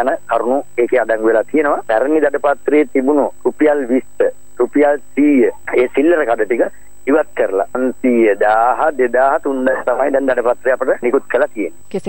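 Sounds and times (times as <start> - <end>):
man speaking: 0.0 - 11.8
faint high whine: 0.0 - 12.0.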